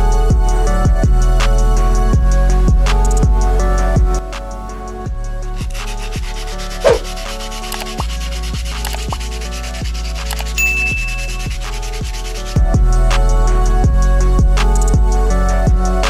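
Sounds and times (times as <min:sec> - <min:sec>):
sandpaper scraping on steel bar: 0:05.6 - 0:12.6
short clear ding: 0:10.6 - 0:11.4.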